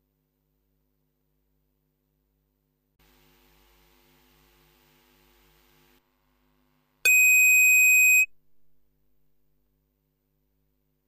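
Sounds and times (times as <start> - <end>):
loud buzzer tone: 7.1 - 8.3.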